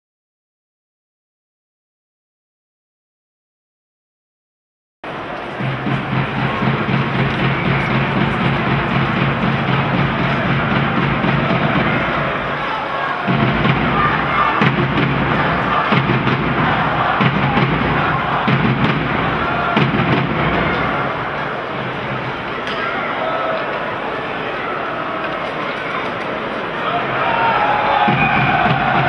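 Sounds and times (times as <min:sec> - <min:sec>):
arena crowd noise: 0:05.0 - 0:29.0
music playing: 0:05.2 - 0:22.4.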